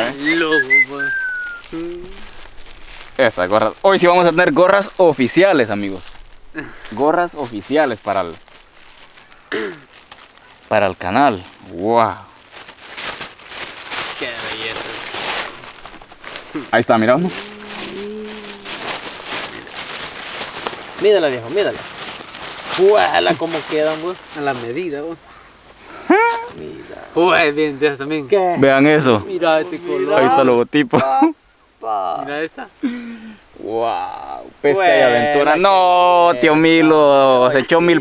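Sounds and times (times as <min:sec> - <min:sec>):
plastic bag crinkling: 0:00.0 - 0:25.4
thin whistle falling in pitch: 0:00.3 - 0:01.6
short vocal sound: 0:01.7 - 0:02.2, 0:16.6 - 0:19.7.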